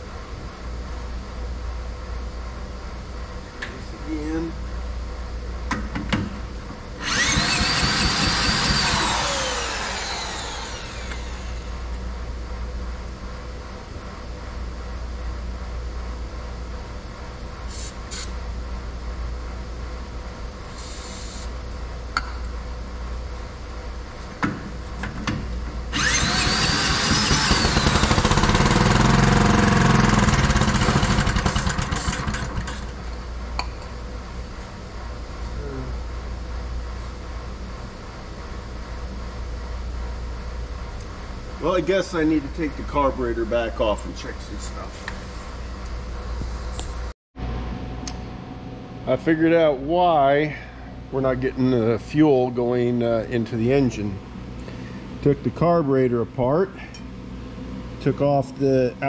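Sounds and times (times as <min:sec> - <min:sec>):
small engine starting and dying: 0:07.0 - 0:11.5, 0:25.9 - 0:32.9.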